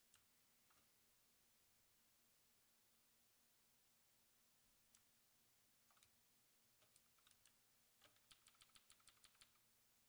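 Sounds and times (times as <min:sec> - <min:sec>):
computer keyboard keys clicking: 0:06.8 - 0:09.6.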